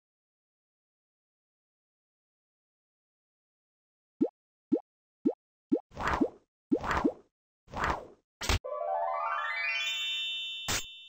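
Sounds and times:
cartoon plopping pops: 4.2s - 7.1s.

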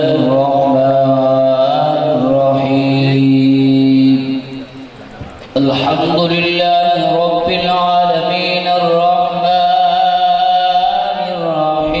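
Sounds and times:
man chanting into microphone: 0.0s - 4.8s, 5.5s - 12.0s.

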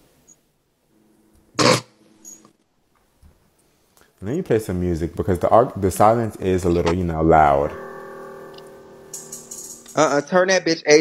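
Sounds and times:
held chord music: 5.2s - 10.8s
shimmering high percussion: 7.7s - 10.3s.

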